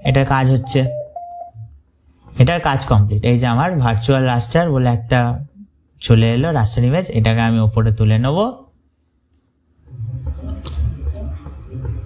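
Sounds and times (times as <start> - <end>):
man speaking: 0.0 - 1.7
brief steady tone: 0.6 - 1.7.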